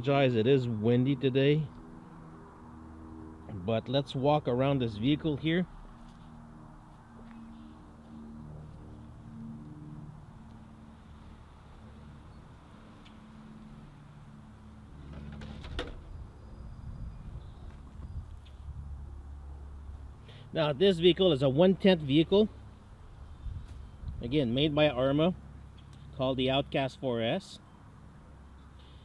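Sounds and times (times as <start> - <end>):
wind buffeting microphone: 16.0 - 18.9, 23.3 - 24.4.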